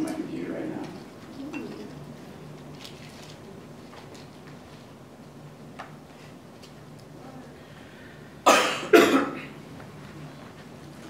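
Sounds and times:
person coughing: 8.4s - 9.6s.

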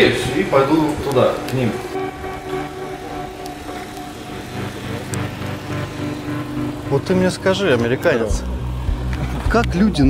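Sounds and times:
car engine idling: 0.0s - 10.0s
faint sustained tones: 0.0s - 10.0s
street noise: 0.0s - 10.0s.

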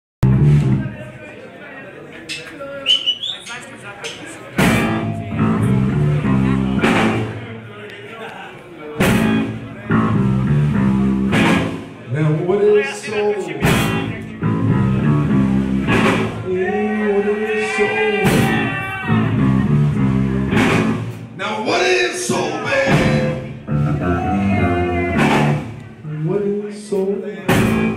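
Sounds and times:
blues band playing live: 0.2s - 0.9s, 4.6s - 7.5s, 9.0s - 12.0s, 13.6s - 16.6s, 18.3s - 26.0s, 27.5s - 27.9s
electric guitar lead bending: 4.6s - 7.4s, 9.0s - 11.8s, 13.6s - 16.5s, 18.4s - 21.3s, 22.8s - 25.9s.

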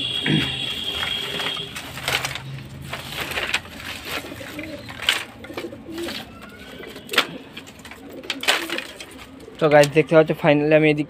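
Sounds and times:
pigeons cooing: 0.0s - 10.3s.

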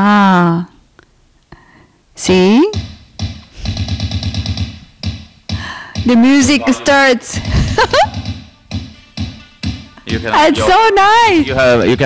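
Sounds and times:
music with fast beat from speaker: 2.7s - 12.0s.

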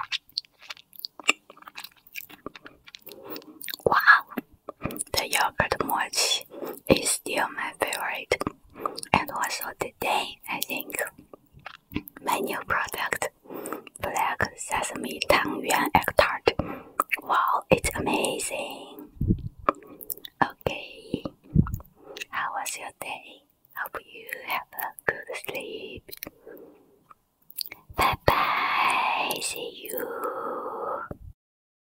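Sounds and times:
wet mouth chewing sounds: 0.0s - 22.9s, 23.8s - 30.5s
person speaking: 2.3s - 11.3s, 11.9s - 26.6s, 27.6s - 31.0s
person whispering: 3.1s - 11.2s, 12.0s - 26.7s, 27.6s - 31.2s
low thumps: 19.2s - 19.7s, 21.5s - 21.8s.

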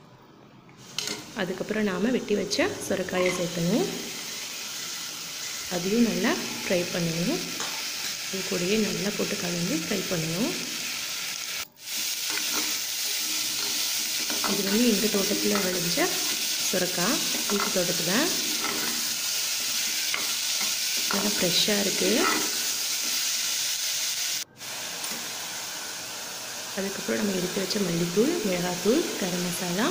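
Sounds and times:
vegetable sizzling in oil: 0.8s - 29.9s
metal spatula scraping pot: 22.0s - 22.6s.

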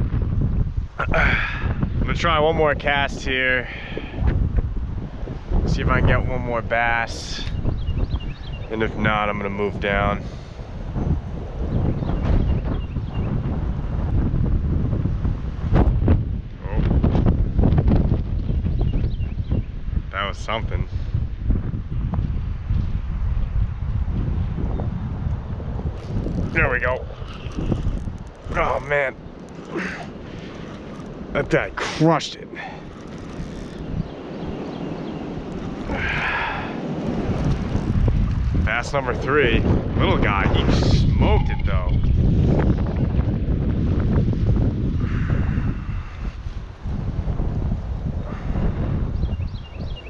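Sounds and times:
wind buffeting microphone: 0.0s - 50.0s.

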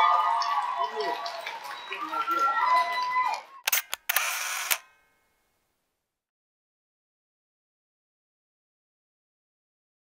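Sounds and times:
camera shutter clicks: 3.7s - 4.9s
camera whirring: 3.7s - 4.9s.

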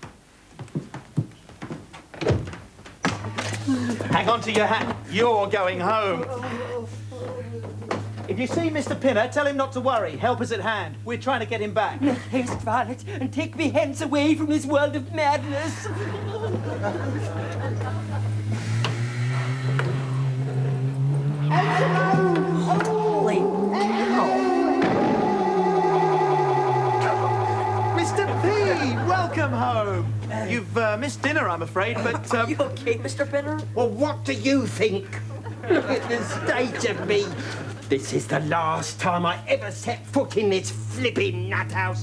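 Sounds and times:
steady low hum: 0.0s - 42.0s
warbling swooping electronic tones: 21.2s - 30.2s
door thumping shut: 24.8s - 25.3s.

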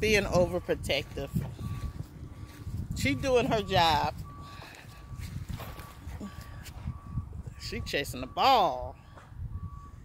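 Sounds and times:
low rumble: 0.0s - 8.3s
distant reversing alarm beeping: 0.0s - 10.0s.

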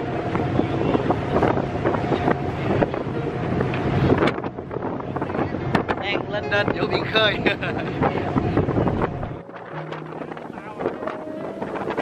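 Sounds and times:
wind buffeting microphone: 0.0s - 12.0s
ferry engines droning: 8.2s - 12.0s.

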